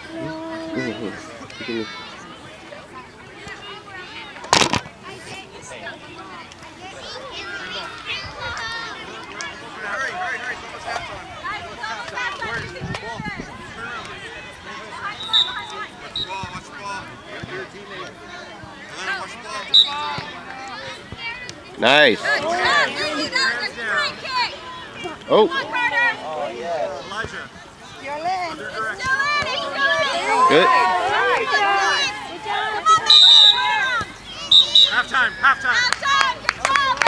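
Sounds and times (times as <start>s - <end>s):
children and adults calling out: 0.0s - 4.4s, 5.0s - 17.1s, 19.0s - 37.0s
referee's whistle blast: 15.1s - 16.4s, 33.0s - 33.8s, 34.4s - 35.2s.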